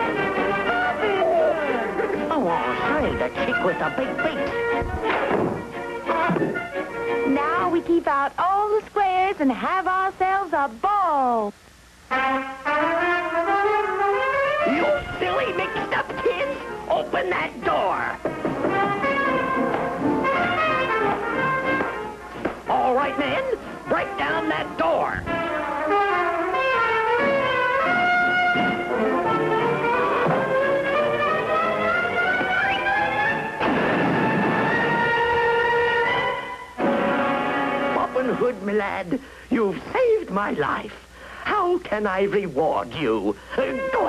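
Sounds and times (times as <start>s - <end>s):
jazz trumpet long notes: 12.0s - 16.9s, 18.4s - 38.3s
orchestra sustained chords: 25.5s - 38.4s
wall smashing crash: 33.6s - 35.5s.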